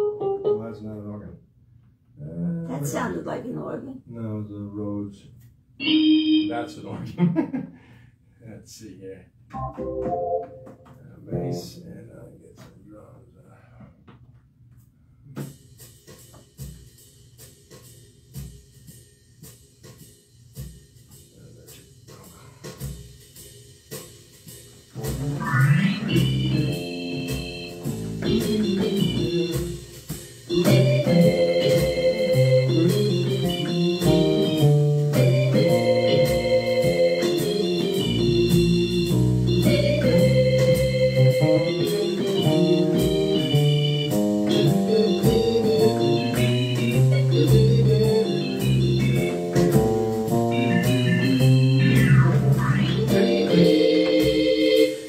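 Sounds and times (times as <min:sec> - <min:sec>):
electronic organ chords: 0:00.0 - 0:01.1, 0:09.5 - 0:11.8, 0:25.0 - 0:55.0.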